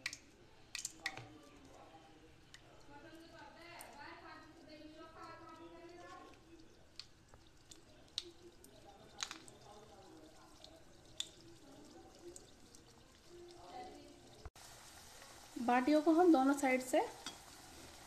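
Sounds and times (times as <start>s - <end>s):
oil frying gently: 0.0s - 18.0s.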